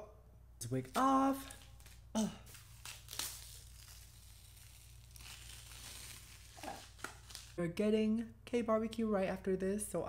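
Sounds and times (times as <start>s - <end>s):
adhesive strip tearing off skin: 0.9s - 7.6s.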